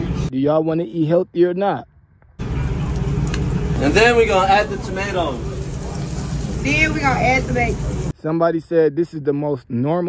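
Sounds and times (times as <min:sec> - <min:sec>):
kitchen equipment low rumble: 0:02.4 - 0:08.1.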